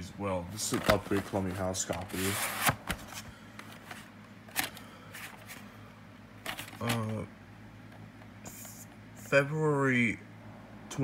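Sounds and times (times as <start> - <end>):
cardboard sleeve rustling: 0.6 - 5.7, 6.5 - 7.2.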